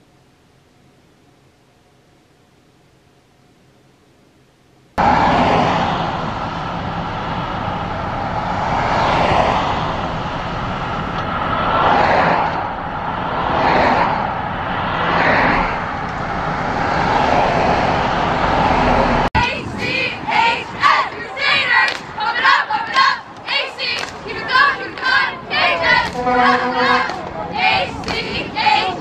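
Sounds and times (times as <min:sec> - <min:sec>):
cars passing close by: 0:05.0 - 0:29.0
steady road noise: 0:05.0 - 0:29.0.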